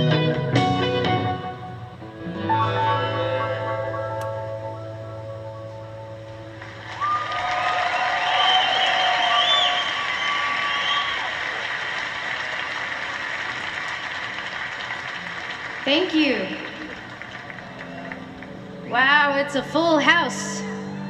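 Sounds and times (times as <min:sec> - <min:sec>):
song ending: 0:00.0 - 0:06.8
audience applauding and cheering: 0:06.4 - 0:19.0
audience whistles: 0:06.8 - 0:12.8.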